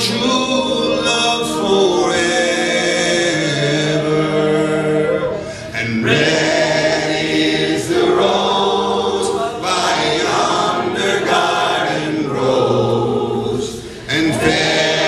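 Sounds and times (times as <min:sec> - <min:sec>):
voices singing unaccompanied: 0:00.0 - 0:15.0.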